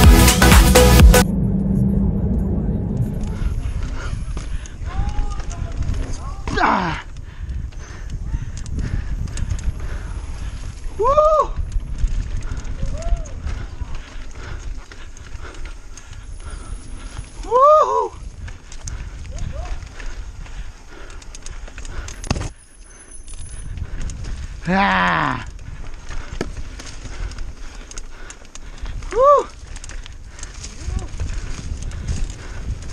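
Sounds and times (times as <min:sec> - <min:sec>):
bike tyres rumbling: 0:01.1 - 0:32.9
wind on camera: 0:01.2 - 0:22.5, 0:23.3 - 0:32.9
person whooping: 0:04.8 - 0:05.6, 0:11.0 - 0:11.6, 0:12.8 - 0:13.4, 0:17.4 - 0:18.2, 0:24.6 - 0:25.5, 0:29.1 - 0:29.6.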